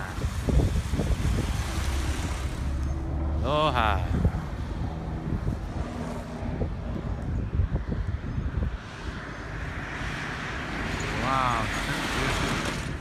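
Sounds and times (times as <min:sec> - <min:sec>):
road traffic noise: 0:00.0 - 0:13.0
vehicle tyre noise: 0:00.0 - 0:13.0
wind buffeting microphone: 0:00.0 - 0:13.0.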